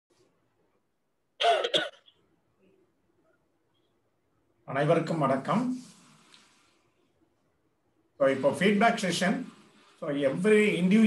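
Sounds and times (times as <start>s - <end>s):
man coughing: 1.4s - 2.1s.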